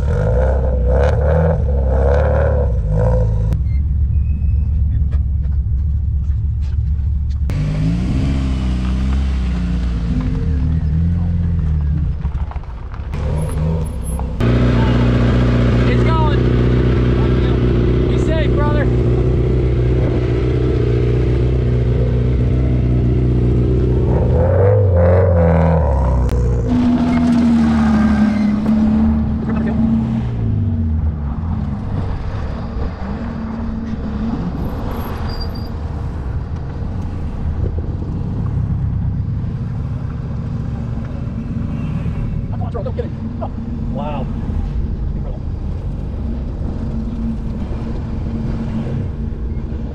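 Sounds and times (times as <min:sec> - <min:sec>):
race car engines idling and revving: 0:00.0 - 0:49.9.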